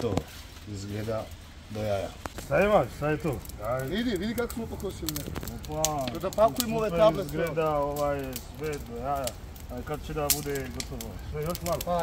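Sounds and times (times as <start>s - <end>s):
burning brush crackling: 0.0s - 12.0s
men talking: 0.0s - 12.0s.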